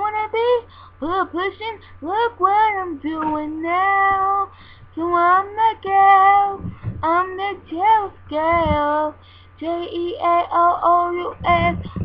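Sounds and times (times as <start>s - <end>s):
girl singing a pop song: 0.0s - 12.0s.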